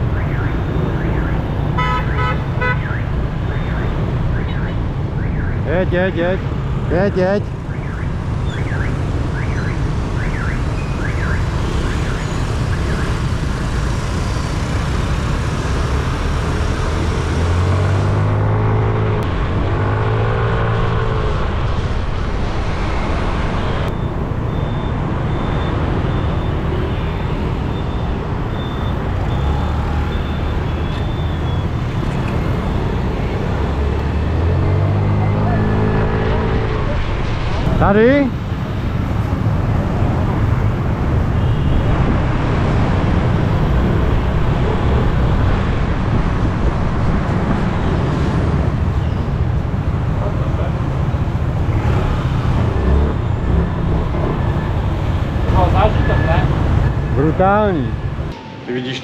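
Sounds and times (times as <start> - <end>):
street traffic: 0.0 - 59.0
motorbike engines accelerating: 10.0 - 59.0.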